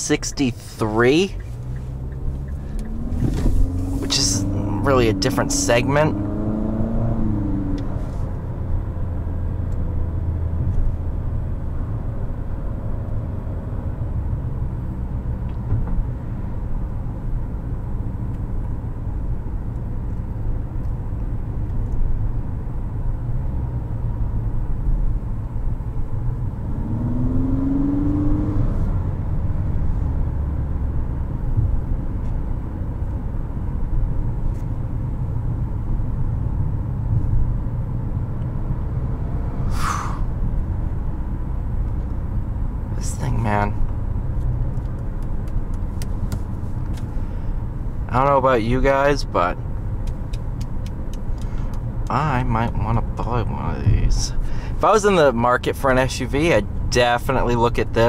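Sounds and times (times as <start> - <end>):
car engine rumble: 0.0 - 58.0
tyres on the road: 0.0 - 58.0
short rising tone: 39.2 - 40.4.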